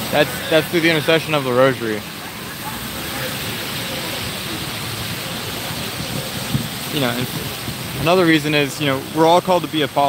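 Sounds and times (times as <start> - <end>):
car tyres on wet street: 0.0 - 10.0
rain hissing: 0.0 - 10.0.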